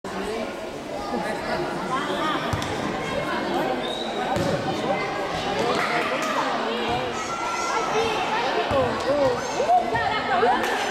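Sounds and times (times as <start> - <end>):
ball thud: 4.4 - 4.6.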